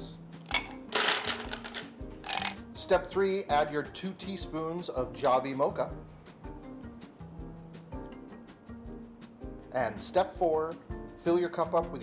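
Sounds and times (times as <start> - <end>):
soft background music: 0.0 - 12.0
ice cube clinking against glass: 0.5 - 2.6.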